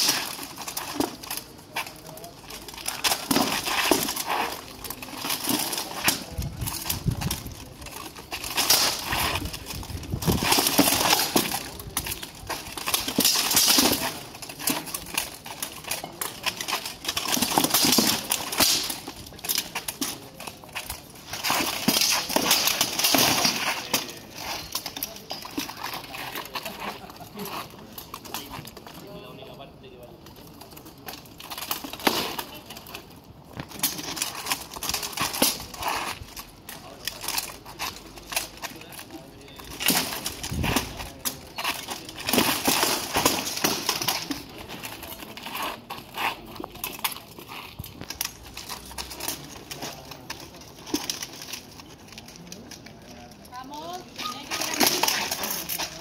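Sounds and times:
swords clanging on shields and armour: 0.0 - 26.7, 37.0 - 51.7, 54.1 - 56.0.

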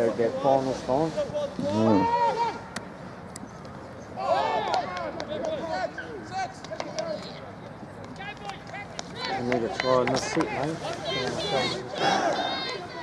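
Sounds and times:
men shouting outdoors: 0.0 - 2.8, 4.1 - 7.6, 8.2 - 13.0.

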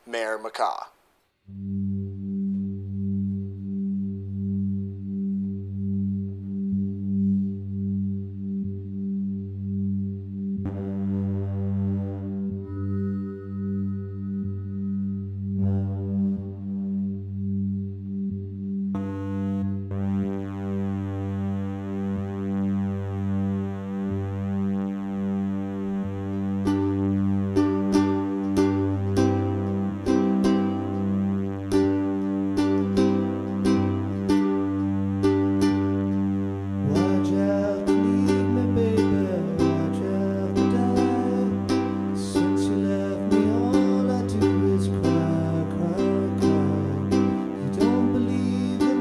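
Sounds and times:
electronic keyboard drone chord: 1.5 - 49.0
pulsing low synth note: 1.5 - 49.0.

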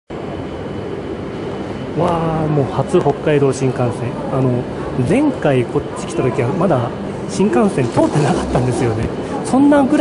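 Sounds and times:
station concourse rumbling hum: 0.1 - 10.0.

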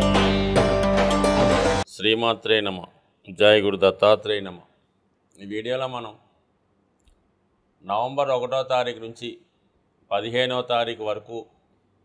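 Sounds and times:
man speaking: 1.8 - 4.7, 5.4 - 6.2, 10.1 - 11.5.

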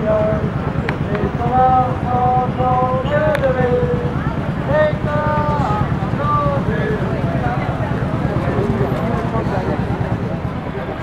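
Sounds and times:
military vehicle engine rumble: 0.0 - 11.0
voices calling out: 0.0 - 11.0.

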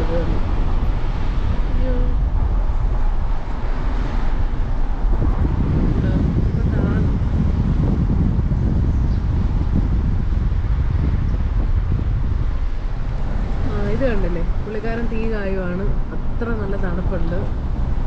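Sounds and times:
car rumbling in motion: 0.0 - 18.0
road noise: 0.0 - 18.0
wind buffeting microphone: 0.0 - 18.0.

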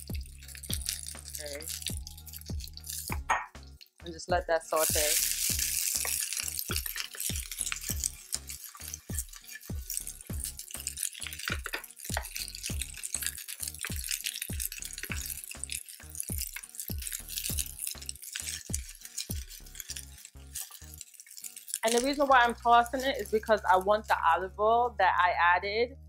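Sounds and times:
tongs tossing food in pan: 0.0 - 3.2, 4.7 - 23.9
beans sizzling in oil: 0.0 - 4.0, 4.7 - 23.8
music with steady beat: 0.0 - 13.1, 13.8 - 15.7.

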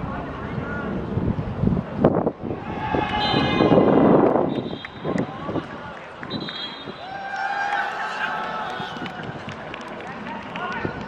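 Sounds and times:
players shouting and chattering: 1.8 - 11.0
short call: 2.9 - 5.4.

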